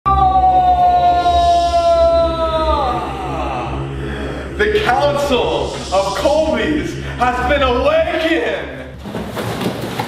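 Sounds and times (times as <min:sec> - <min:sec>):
man screaming: 0:00.1 - 0:08.9.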